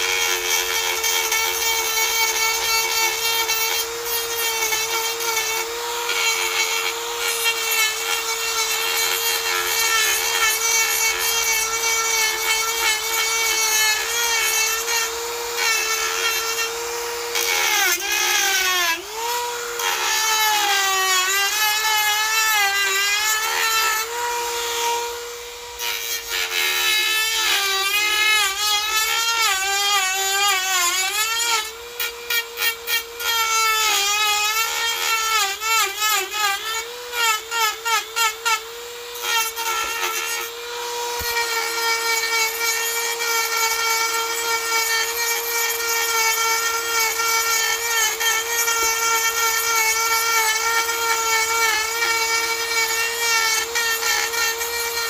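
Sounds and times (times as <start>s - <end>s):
rotary tool carving wood: 0.0s - 55.0s.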